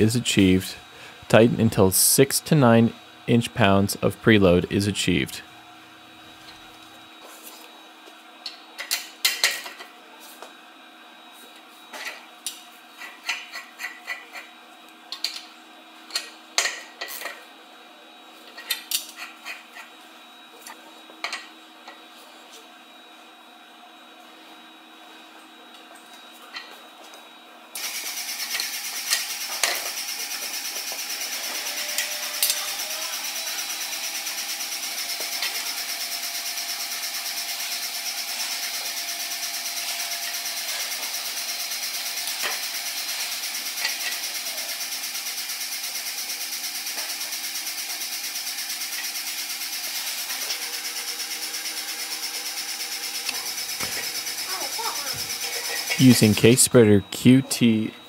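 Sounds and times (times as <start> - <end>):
machine hiss and hum: 0.0 - 17.4, 27.3 - 58.0.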